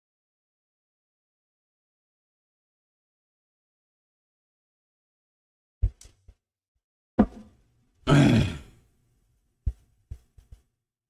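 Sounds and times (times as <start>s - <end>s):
man's loud vocal exhale: 8.1s - 8.8s.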